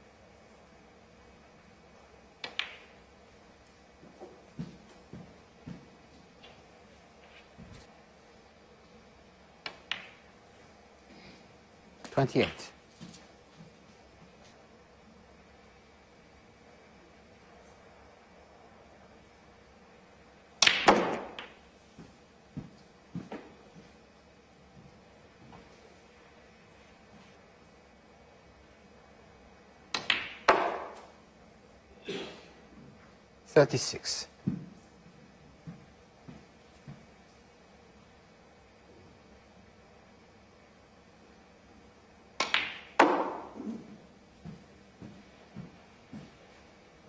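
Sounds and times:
snooker balls clicking: 2.4s - 7.9s, 9.6s - 10.3s, 12.0s - 12.6s, 20.6s - 23.6s, 29.9s - 31.2s, 42.4s - 43.9s
cue tip striking ball: 20.6s - 21.6s, 30.0s - 31.1s, 42.4s - 43.9s.

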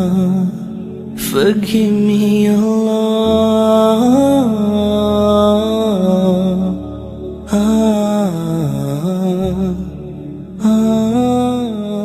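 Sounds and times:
low sustained vocal drone: 0.0s - 12.0s
wordless vocal singing: 0.0s - 12.0s.

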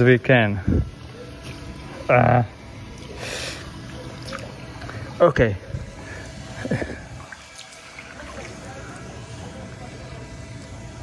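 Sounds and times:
outdoor background noise: 0.0s - 11.0s
kayak paddle in water: 6.1s - 9.2s.

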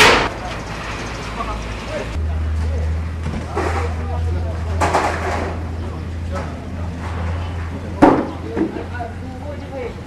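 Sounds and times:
people talking: 1.3s - 10.0s.

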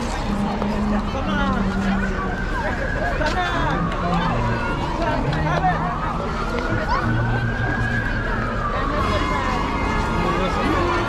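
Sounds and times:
crowd chatter: 0.0s - 11.0s
siren wailing: 0.2s - 11.0s.

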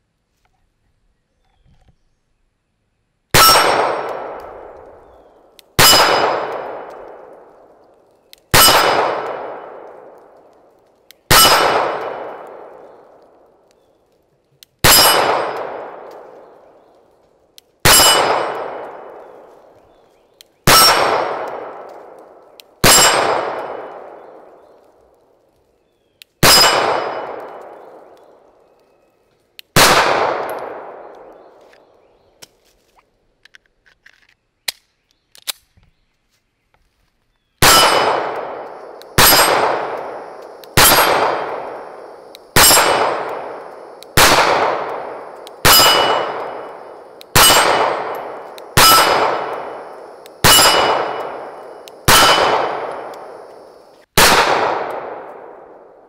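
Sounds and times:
pistol shots: 3.4s - 7.7s, 8.5s - 10.4s, 11.3s - 13.3s, 14.8s - 16.5s, 17.8s - 19.4s, 20.7s - 24.6s, 26.4s - 28.2s, 29.8s - 31.5s, 37.6s - 56.0s
steel plate target ringing: 14.9s - 15.5s, 17.9s - 18.6s, 37.6s - 38.2s, 39.2s - 39.9s, 42.6s - 43.2s, 45.1s - 49.8s, 50.4s - 53.1s.

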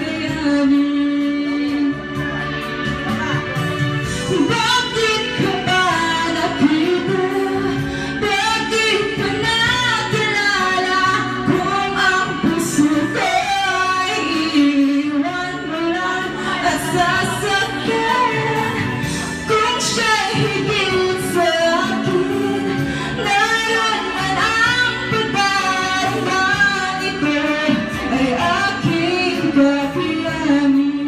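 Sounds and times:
woman singing into microphone: 0.0s - 31.0s.

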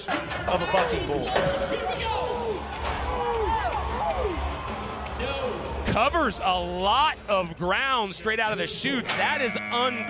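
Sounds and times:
background music: 0.0s - 10.0s
crowd noise: 0.0s - 10.0s.

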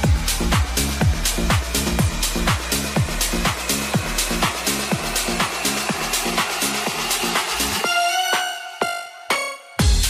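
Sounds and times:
hi-hats: 0.0s - 8.5s
kick drum: 0.0s - 9.0s, 9.8s - 10.0s
bassline: 0.0s - 10.0s
funky house music: 0.0s - 10.0s.

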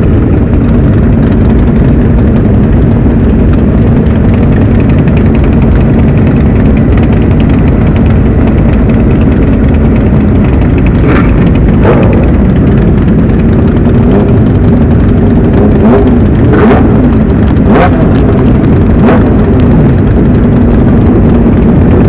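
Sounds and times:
motorcycle engines idling: 0.0s - 22.0s
motorcycle throttle revs: 0.0s - 22.0s.

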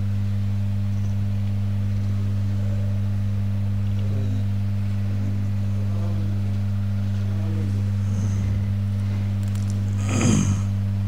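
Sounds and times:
sound system electrical hum: 0.0s - 11.0s.

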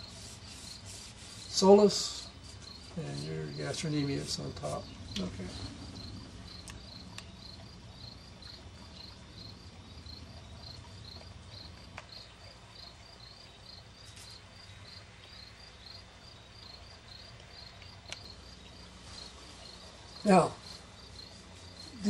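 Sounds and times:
cricket chirping: 0.0s - 22.0s
low steady hum: 0.0s - 22.0s.

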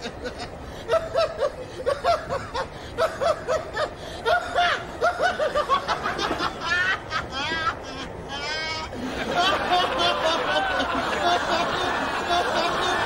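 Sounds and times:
man laughing: 0.0s - 13.0s.

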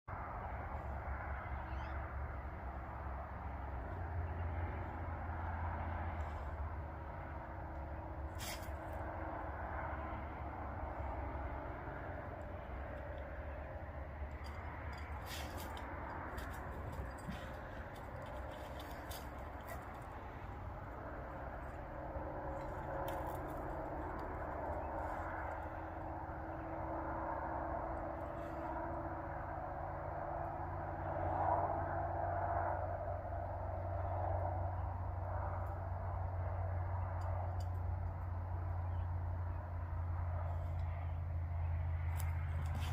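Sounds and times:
low rumble: 0.1s - 42.9s.

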